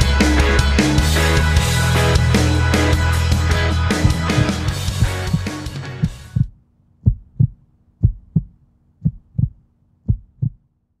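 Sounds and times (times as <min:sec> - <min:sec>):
rock music: 0:00.0 - 0:06.4
heartbeat double thump: 0:04.0 - 0:10.6.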